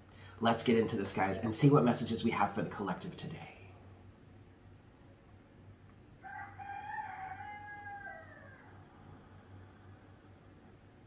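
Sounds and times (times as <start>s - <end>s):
rooster crowing: 6.2s - 9.3s.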